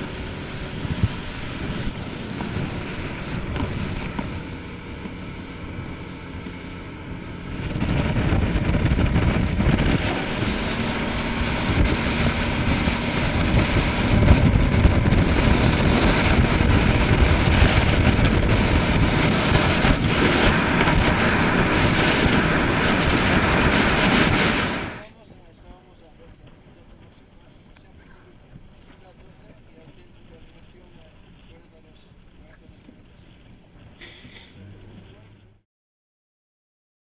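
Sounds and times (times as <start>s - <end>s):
wind buffeting microphone: 0.0s - 25.0s
boat motor rushing: 0.0s - 35.6s.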